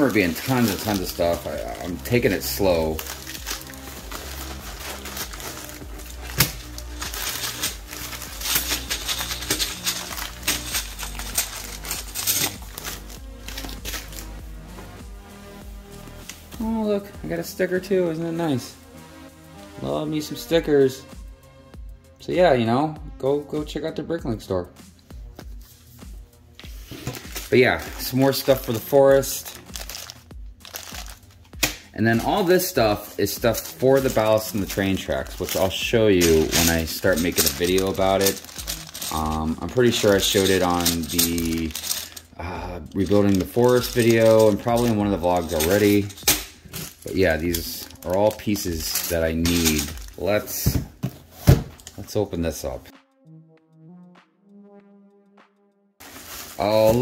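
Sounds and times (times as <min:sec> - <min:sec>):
plastic bags rustling: 0:00.0 - 0:14.4, 0:26.6 - 0:52.2, 0:56.0 - 0:57.0
plastic packaging crinkling: 0:00.0 - 0:14.4, 0:26.9 - 0:52.1, 0:56.0 - 0:57.0
background music: 0:00.0 - 0:57.0.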